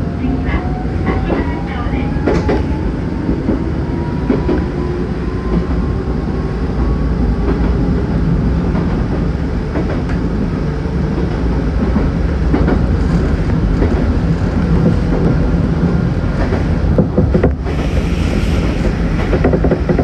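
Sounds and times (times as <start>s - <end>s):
electric train rumbling: 0.0s - 20.0s.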